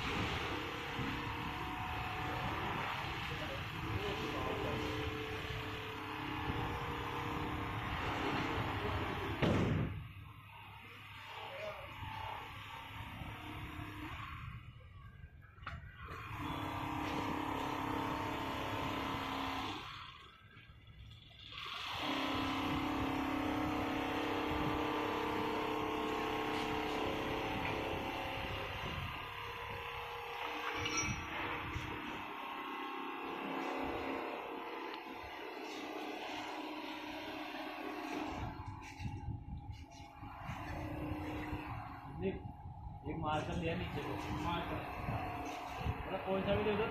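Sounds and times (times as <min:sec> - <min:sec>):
quilting machine mechanical hum: 0:00.0 - 0:46.9.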